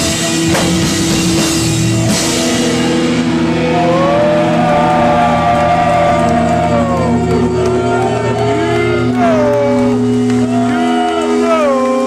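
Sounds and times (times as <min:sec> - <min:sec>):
electric guitar bending notes: 0:00.0 - 0:12.0
live rock band: 0:00.0 - 0:12.0.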